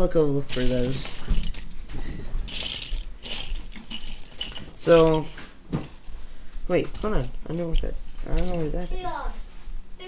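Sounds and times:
plastic minifigures clattering: 0:00.5 - 0:01.7, 0:02.5 - 0:05.3.

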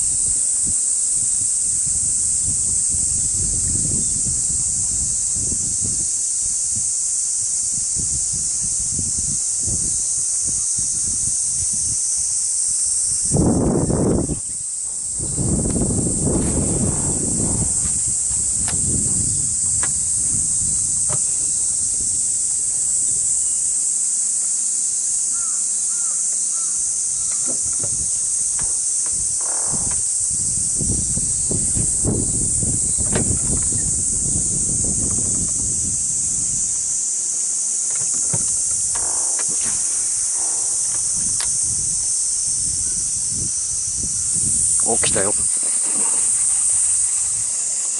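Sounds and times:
low rumbling on microphone: 0:00.0 - 0:06.1, 0:13.3 - 0:23.4, 0:27.5 - 0:36.9, 0:38.0 - 0:47.6
cicadas buzzing: 0:00.0 - 0:47.9.

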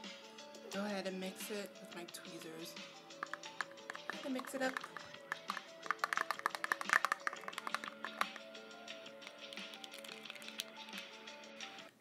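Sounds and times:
background music with held notes: 0:00.0 - 0:12.0
tweezers clicking on plastic container: 0:03.1 - 0:08.5, 0:09.2 - 0:11.1.

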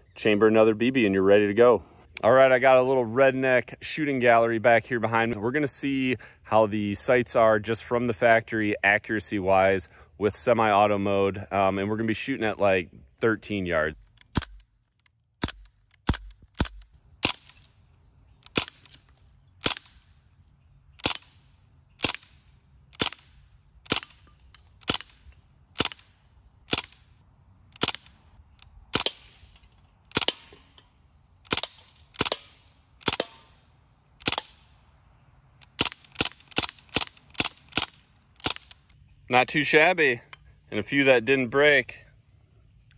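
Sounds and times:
bb rifle shots: 0:15.4 - 0:17.7, 0:18.4 - 0:19.0, 0:19.6 - 0:20.0, 0:21.0 - 0:21.4, 0:22.0 - 0:27.1, 0:27.8 - 0:28.2, 0:28.9 - 0:30.7, 0:31.4 - 0:33.6, 0:34.2 - 0:34.7, 0:35.6 - 0:38.8.

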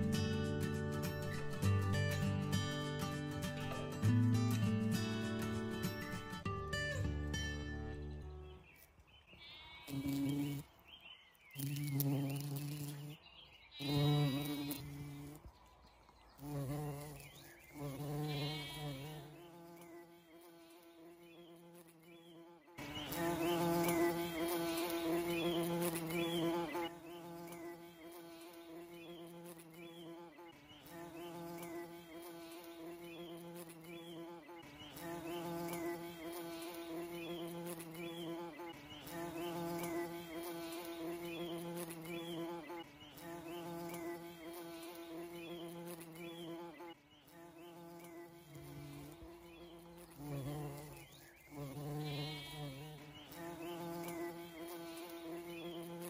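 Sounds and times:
bumblebee buzzing in flight: 0:09.5 - 0:15.5, 0:16.4 - 0:56.0.

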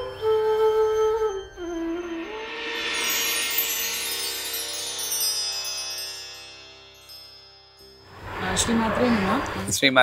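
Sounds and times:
shimmering chime: 0:00.0 - 0:09.4.

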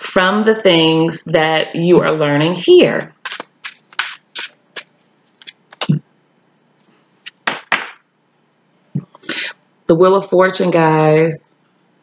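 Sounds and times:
cards shuffling snaps and taps: 0:03.1 - 0:05.9, 0:07.3 - 0:08.0.

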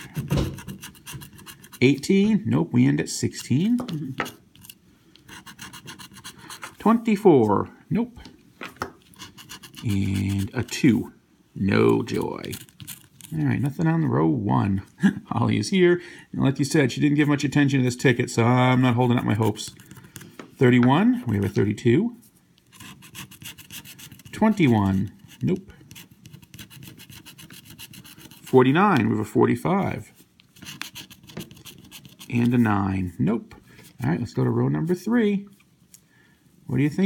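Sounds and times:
tool scraping scratch-off ticket: 0:00.0 - 0:02.1, 0:03.1 - 0:07.6, 0:09.0 - 0:11.0, 0:11.9 - 0:13.4, 0:18.8 - 0:20.3, 0:22.7 - 0:29.2, 0:29.8 - 0:32.7.

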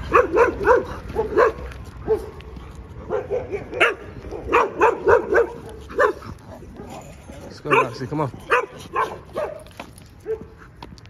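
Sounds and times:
dog yapping: 0:00.0 - 0:02.3, 0:03.1 - 0:07.1, 0:07.7 - 0:10.5.

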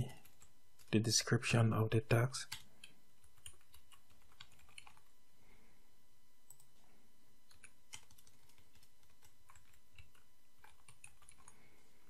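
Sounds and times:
faint keyboard typing: 0:00.0 - 0:01.0, 0:02.4 - 0:05.1, 0:06.4 - 0:12.0.

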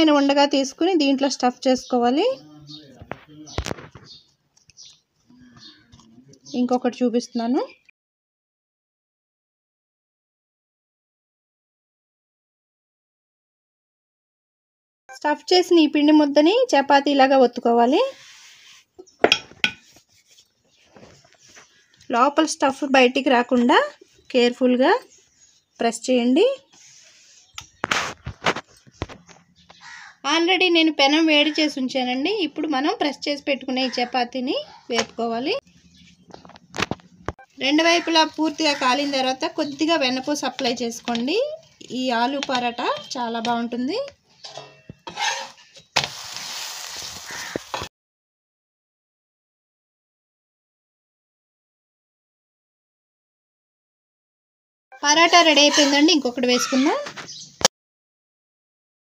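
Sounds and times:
flatbread sizzling in oil: 0:45.2 - 0:47.9.

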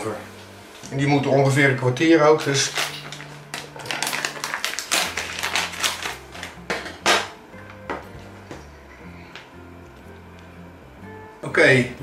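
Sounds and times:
plastic food tray crinkling: 0:02.4 - 0:06.6.

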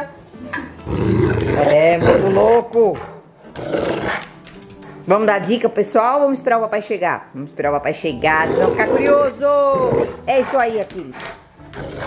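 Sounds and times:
faint background music: 0:00.0 - 0:12.0
dog growling: 0:00.8 - 0:04.4, 0:08.3 - 0:12.0.

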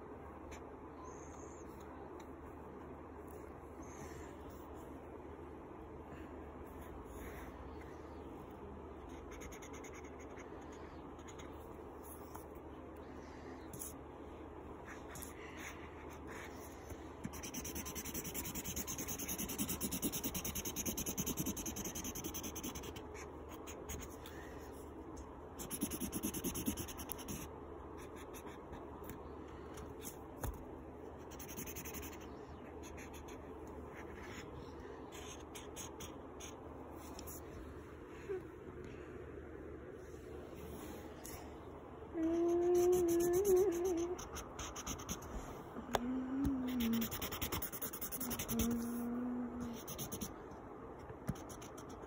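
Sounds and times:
marker scribbling on paper: 0:09.1 - 0:10.6, 0:14.9 - 0:24.2, 0:25.6 - 0:28.8, 0:31.2 - 0:34.5, 0:35.1 - 0:36.6, 0:42.7 - 0:45.3, 0:46.7 - 0:49.0.

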